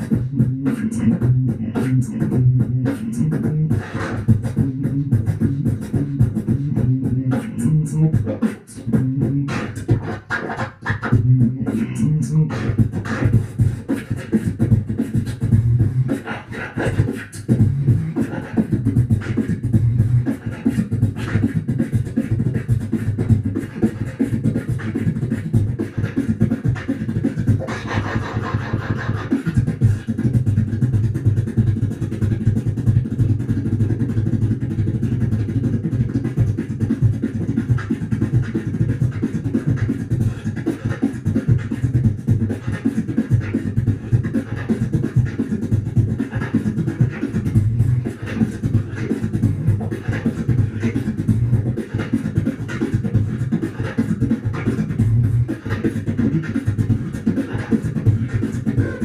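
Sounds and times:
beatboxing into microphone: 0.0s - 59.0s.

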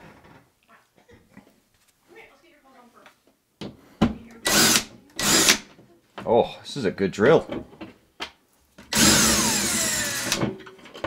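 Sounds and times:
power drill bursts: 4.4s - 5.7s, 8.9s - 10.5s.

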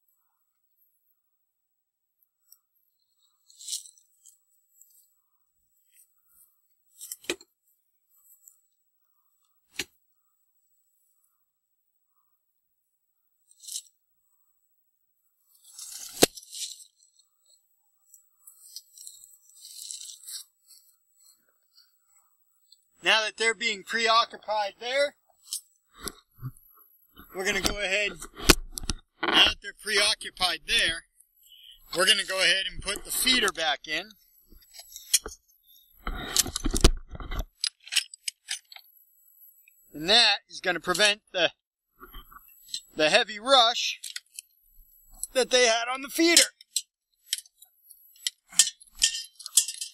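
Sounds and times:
scraps crunching and scraping: 15.6s - 17.0s, 18.4s - 21.9s
light metallic clinks: 48.2s - 49.9s
metal feeder clattering: 48.6s - 49.9s.

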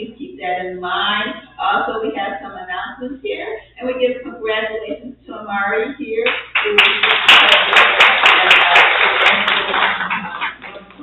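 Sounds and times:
congregation applauding: 6.3s - 11.0s
sharp steady hand claps: 6.3s - 11.0s.

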